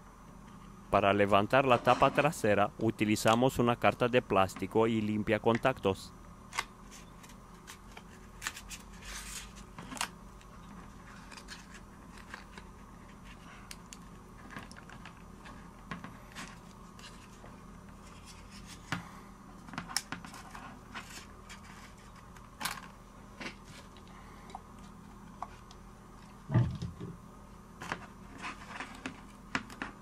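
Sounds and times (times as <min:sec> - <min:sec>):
plastic card scraping and clicking: 0:11.0 - 0:12.8.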